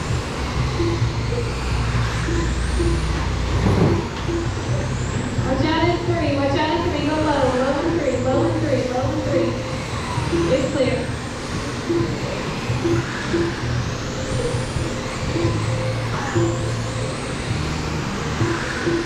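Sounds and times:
music over loudspeakers: 0.0 - 19.0
rc car motors whining: 0.0 - 19.0.

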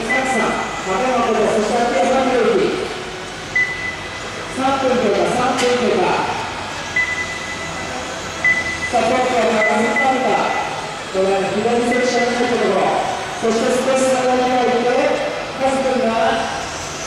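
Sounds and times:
commentator over pa: 8.9 - 16.6.

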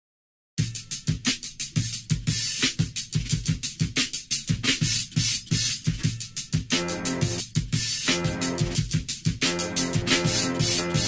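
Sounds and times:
rapid cymbal and hi-hat strikes: 0.6 - 11.0.

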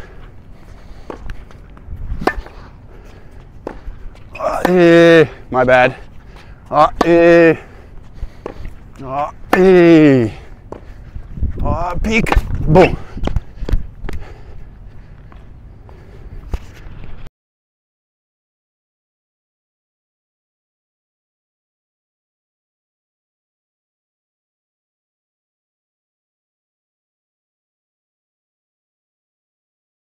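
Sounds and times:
racket hitting tennis ball: 1.0 - 2.7, 3.6 - 5.1, 6.8 - 7.5, 8.4 - 10.0, 12.1 - 14.2.

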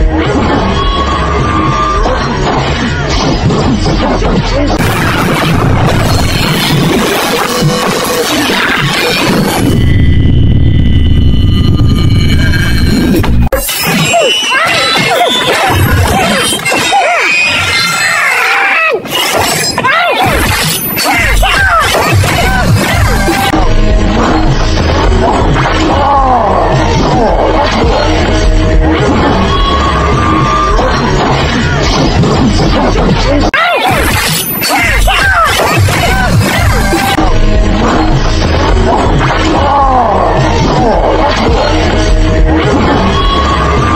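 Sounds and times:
loud action film music: 0.0 - 13.5, 20.2 - 43.9
smashing and hitting effects: 2.0 - 10.4, 19.0 - 43.2.

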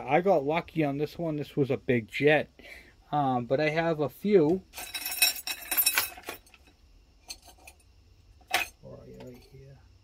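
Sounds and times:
small metal parts clinking: 4.5 - 9.6.

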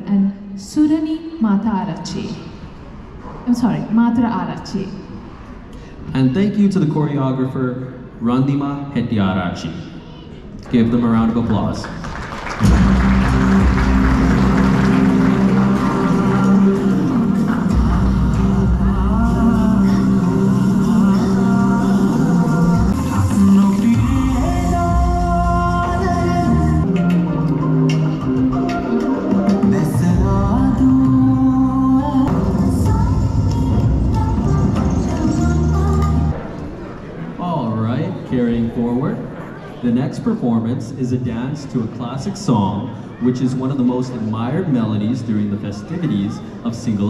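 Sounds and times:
loud dance music with heavy bass: 12.6 - 26.8.

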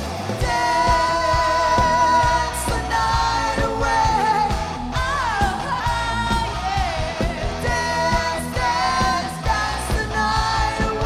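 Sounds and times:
electric guitar: 0.0 - 11.0
rock band playing: 0.0 - 11.0
steady drum beat: 0.0 - 11.0.

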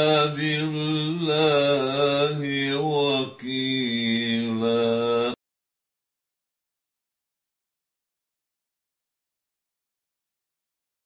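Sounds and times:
man reciting in melodic chant: 0.0 - 5.4.

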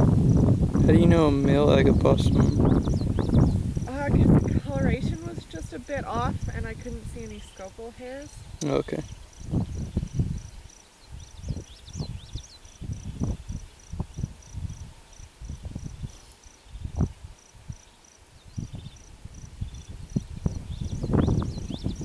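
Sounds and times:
low thumps on microphone: 0.0 - 7.3
insect chirping: 0.0 - 22.0.

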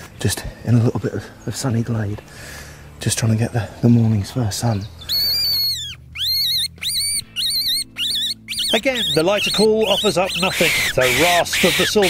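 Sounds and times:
fox call squeals: 5.0 - 12.0.

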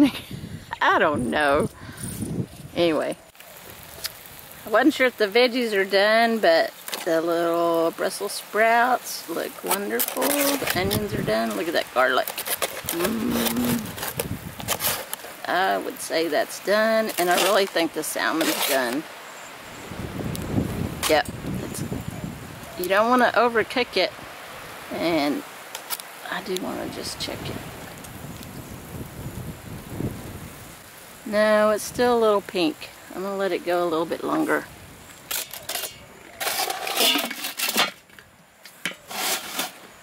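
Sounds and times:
wind buffeting microphone: 0.0 - 3.2, 10.4 - 11.6, 12.7 - 14.9, 19.7 - 24.8, 26.4 - 31.0
metal grill lid scraping: 35.3 - 38.1, 38.8 - 39.9.

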